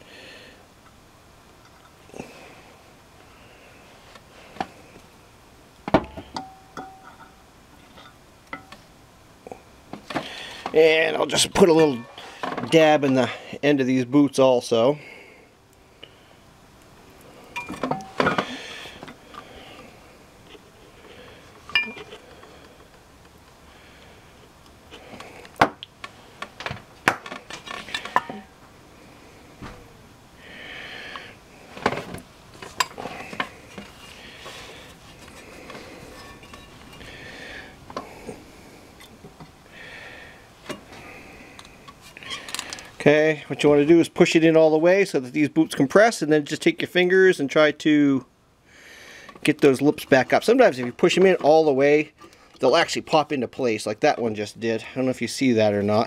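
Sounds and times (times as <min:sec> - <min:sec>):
metal clinks and knocks: 0:06.0 - 0:08.8, 0:21.7 - 0:22.2.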